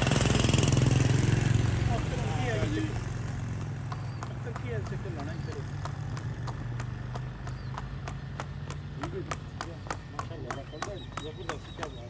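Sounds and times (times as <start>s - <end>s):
horse hooves on paved road: 0.0s - 12.0s.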